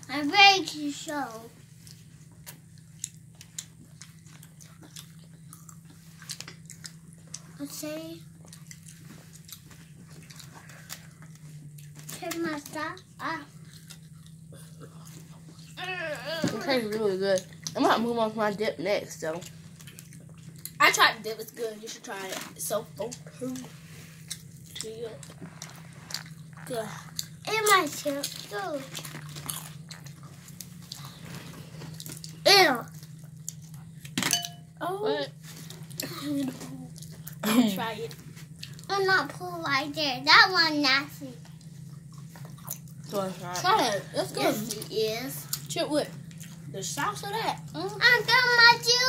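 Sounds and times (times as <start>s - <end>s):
steady low hum: 0.0s - 49.0s
people crunching tortilla chips: 8.4s - 16.4s, 23.4s - 34.2s
utensil clinking on glass dish: 34.3s - 34.7s.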